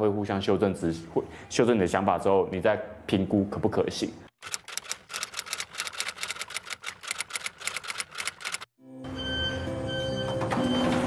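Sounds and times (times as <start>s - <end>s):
typewriter clicking: 4.4s - 8.7s
soft background music: 8.8s - 11.0s.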